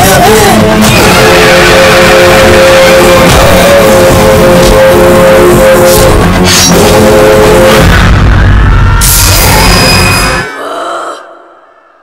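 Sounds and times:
loud action music and effects: 0.0 - 10.6.

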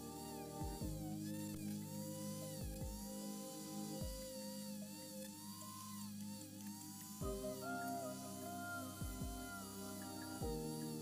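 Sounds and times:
music of long held notes: 0.0 - 11.0.

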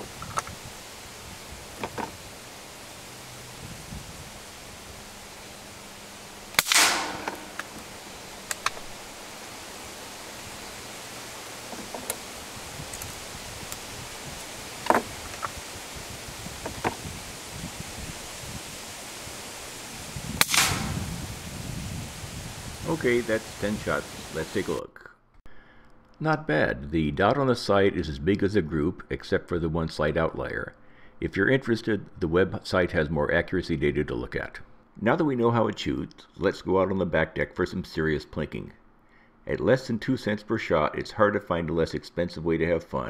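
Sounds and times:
rifle action clicks: 6.6 - 7.9
rifle shots with echo: 6.6 - 8.1, 20.4 - 21.3.

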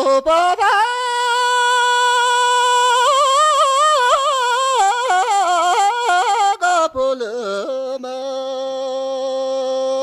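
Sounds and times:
high solo voice singing: 0.0 - 10.0.

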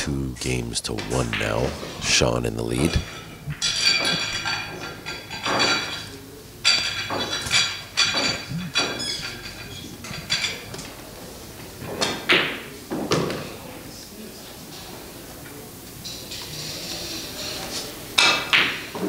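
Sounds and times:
pool balls clacking: 0.0 - 19.0.

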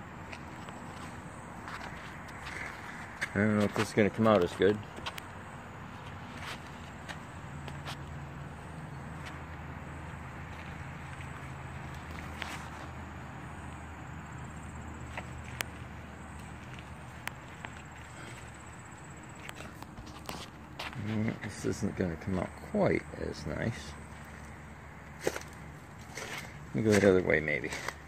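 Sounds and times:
footsteps: 0.2 - 5.2, 6.0 - 8.1, 15.1 - 18.6, 19.3 - 21.6.

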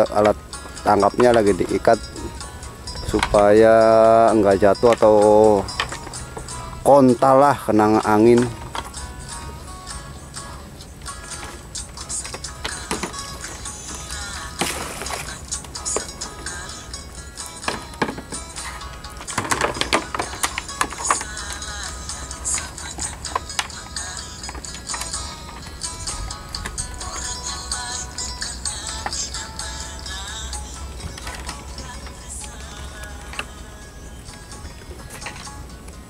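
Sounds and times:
background music with low beat: 0.0 - 36.0.

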